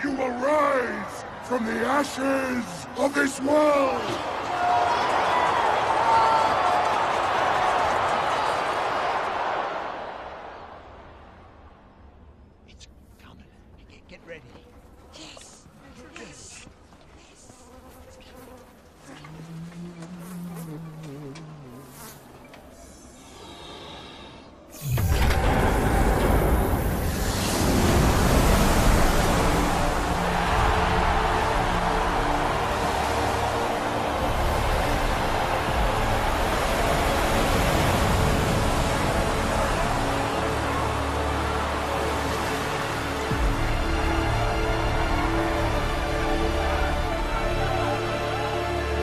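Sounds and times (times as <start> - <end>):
fly buzzing: 17.2 - 24.9
water torrent rushing: 24.9 - 49.0.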